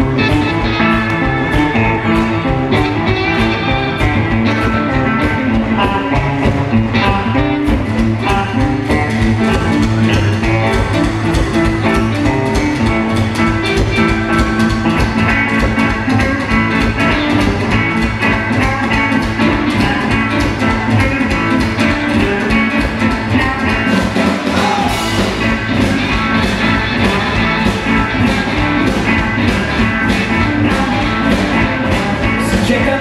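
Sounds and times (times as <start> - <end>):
bass guitar: 0.0 - 33.0
drum kit: 0.0 - 33.0
electric guitars: 0.0 - 33.0.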